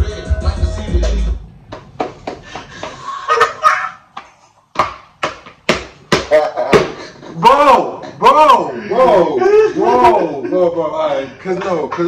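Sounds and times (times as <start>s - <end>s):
hip hop music: 0.0s - 3.6s
men laughing: 2.6s - 4.6s, 6.3s - 11.0s.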